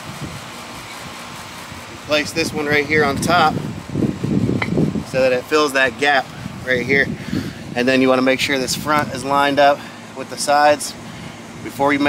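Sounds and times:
air conditioner fan hum: 0.0s - 12.0s.

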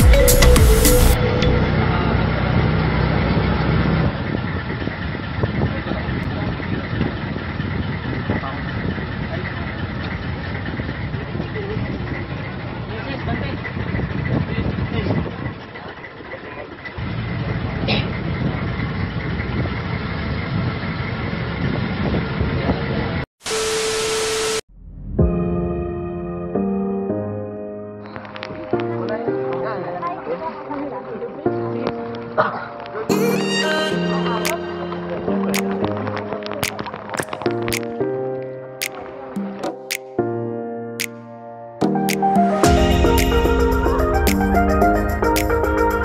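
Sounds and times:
boat engine running: 0.0s - 22.0s.

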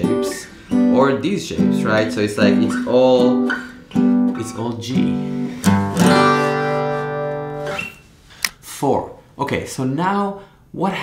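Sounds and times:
acoustic guitar chord ringing: 0.0s - 8.1s.

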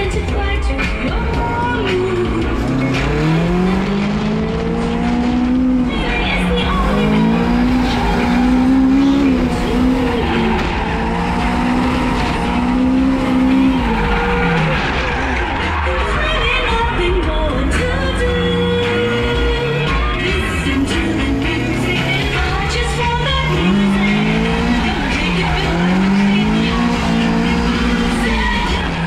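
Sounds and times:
car engine revving: 0.0s - 29.0s.

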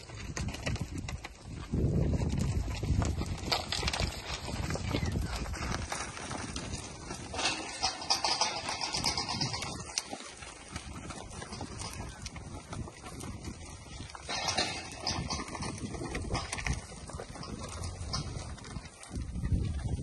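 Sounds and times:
cattle hooves on dry dirt: 0.0s - 20.0s.

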